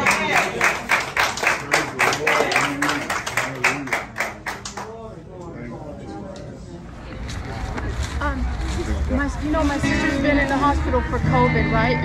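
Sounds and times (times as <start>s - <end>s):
people clapping in rhythm: 0.0s - 5.0s
voices: 0.0s - 12.0s.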